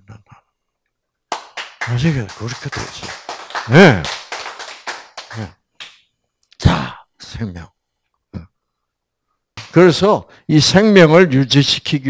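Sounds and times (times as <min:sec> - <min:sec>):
sharp claps: 0:01.3 - 0:06.1, 0:09.6 - 0:09.8.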